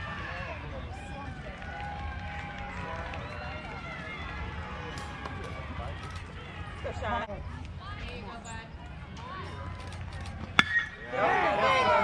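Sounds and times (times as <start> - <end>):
crowd cheering: 0.0 - 7.9, 9.2 - 12.0
spectators talking and calling: 0.0 - 12.0
bat hitting baseball: 10.5 - 11.0.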